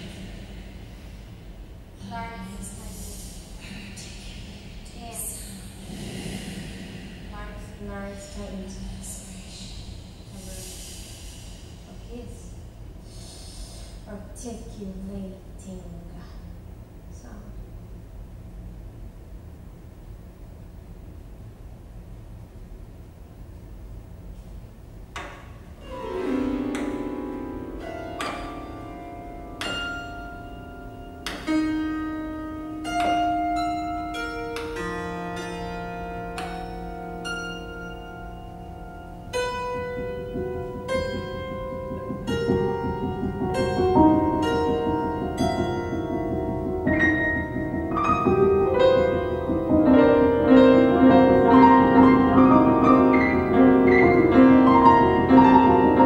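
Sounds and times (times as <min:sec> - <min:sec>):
low steady hum: 0:00.0 - 0:56.0
woman speaking: 0:02.0 - 0:06.6, 0:07.2 - 0:10.8, 0:11.9 - 0:12.5, 0:14.1 - 0:16.4, 0:17.2 - 0:17.6
grand piano notes ringing: 0:25.2 - 0:56.0.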